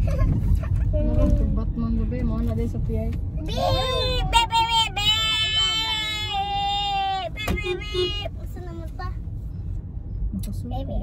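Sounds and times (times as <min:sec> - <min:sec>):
road rumble inside a car: 0:00.0 - 0:11.0.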